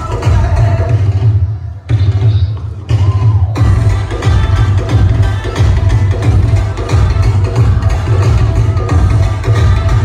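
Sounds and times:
folk dance music with vocals: 0.0s - 10.0s
heavy pounding low beat: 0.0s - 10.0s.

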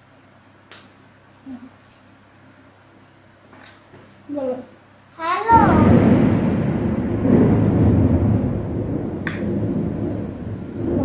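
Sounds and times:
thunder rumbling: 5.5s - 11.0s.

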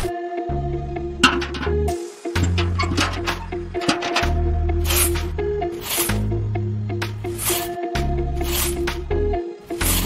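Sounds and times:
background music with bass notes: 0.0s - 10.0s
short hissing swishes: 4.8s - 6.2s, 7.3s - 7.8s, 8.4s - 9.0s, 9.7s - 10.0s.

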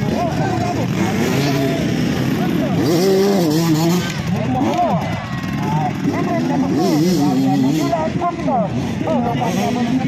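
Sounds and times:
dirt bike engine revving: 0.0s - 10.0s
voices shouting: 3.7s - 9.9s.

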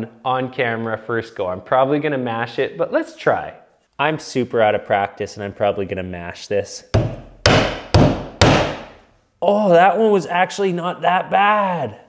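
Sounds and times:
hammer striking nail: 6.9s - 9.0s.

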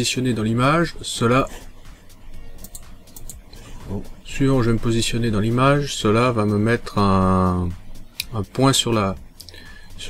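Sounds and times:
faint background music: 0.0s - 10.0s
computer mouse clicks: 2.6s - 3.6s.

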